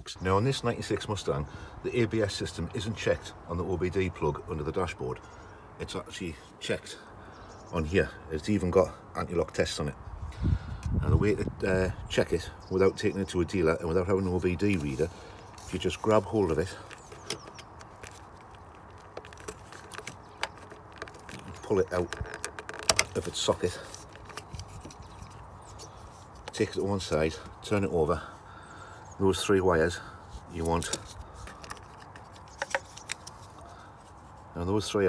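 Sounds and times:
faint clicks and rustles: 14.2 - 27.7, 30.2 - 34.6.

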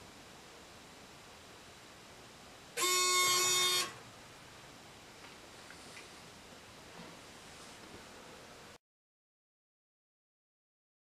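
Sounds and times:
electronic buzzer: 2.8 - 4.0.

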